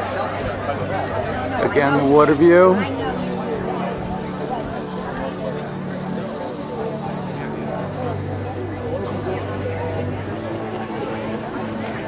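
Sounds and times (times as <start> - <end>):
faint indistinct voices: 0.0 - 12.0
steady low drone: 0.0 - 12.0.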